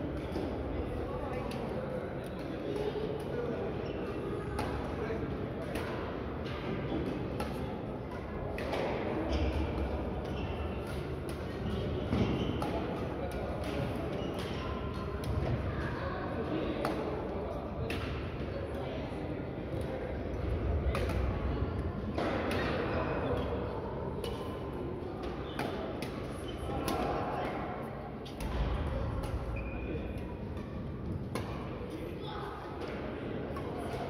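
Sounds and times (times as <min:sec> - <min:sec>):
rackets hitting shuttlecocks: 0:20.7 - 0:21.4.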